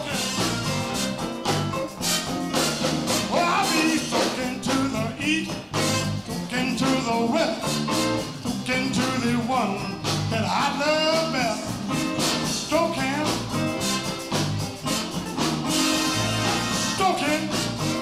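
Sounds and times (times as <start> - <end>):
live band playing: 0.0 - 18.0
steady drum beat: 0.0 - 18.0.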